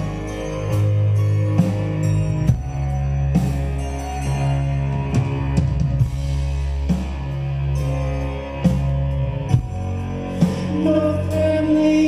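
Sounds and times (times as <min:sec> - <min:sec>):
deep bass notes: 0:00.0 - 0:12.0.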